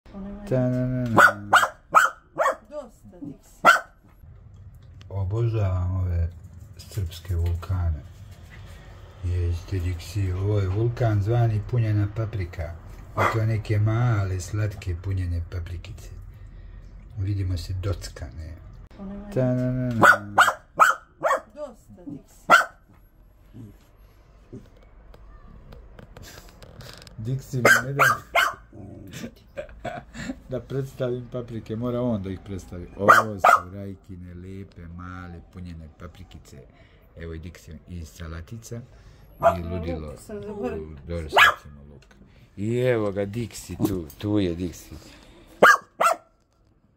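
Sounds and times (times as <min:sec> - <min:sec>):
dog barking: 0:01.1 - 0:02.7, 0:03.6 - 0:04.0, 0:13.2 - 0:13.5, 0:19.9 - 0:21.6, 0:22.5 - 0:22.9, 0:27.6 - 0:28.7, 0:33.0 - 0:33.8, 0:39.4 - 0:39.8, 0:41.3 - 0:41.8, 0:45.6 - 0:46.4.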